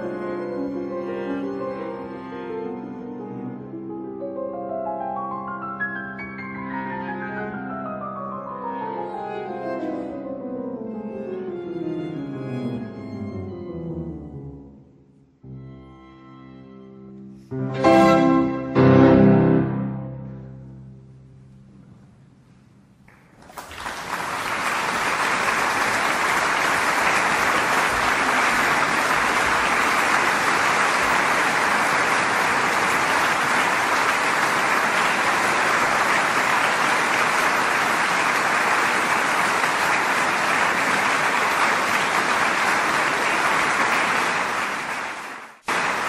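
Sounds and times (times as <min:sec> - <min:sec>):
audience applauding: 0:23.1 - 0:46.0.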